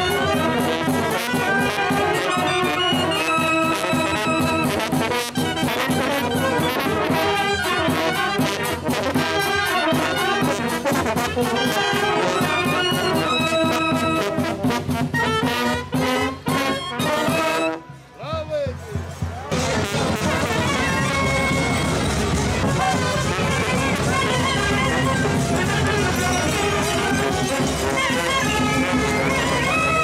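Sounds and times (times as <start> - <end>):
brass band playing lively tune: 0.0 - 30.0.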